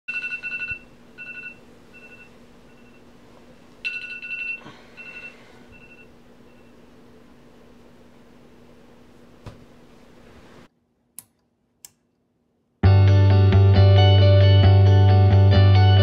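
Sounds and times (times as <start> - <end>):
phone alarm beeping: 0.1 - 3.0, 3.8 - 6.8.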